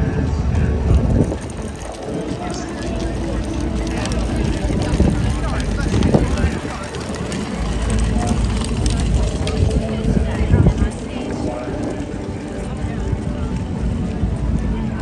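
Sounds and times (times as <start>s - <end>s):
crowd chatter: 0.0s - 15.0s
steady low rumble: 0.0s - 15.0s.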